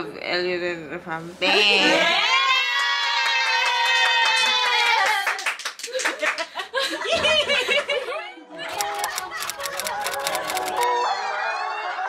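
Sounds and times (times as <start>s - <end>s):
small group clapping: 2.6s - 7.0s, 8.7s - 10.9s
voices and laughter: 5.9s - 10.6s.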